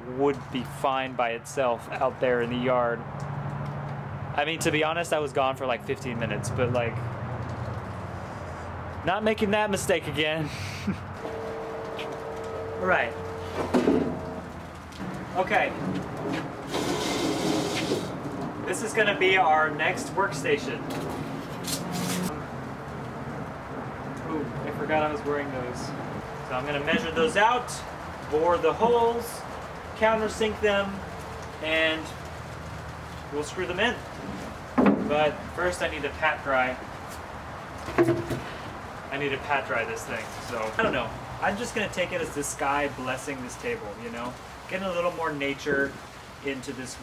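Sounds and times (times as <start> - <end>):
steady low hum: 10.4 - 16.8.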